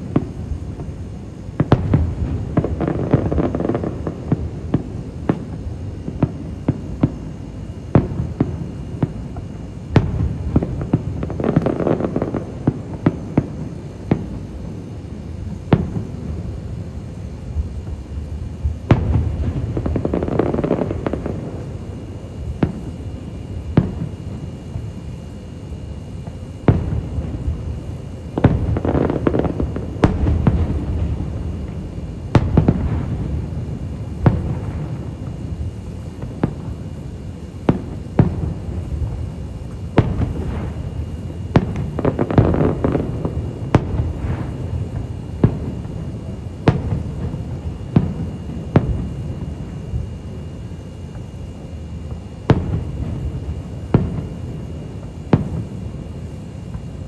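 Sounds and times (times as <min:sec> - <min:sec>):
firework bangs and booms: 0:00.0 - 0:50.4, 0:52.1 - 0:57.0
dense firework crackling: 0:00.0 - 0:57.0.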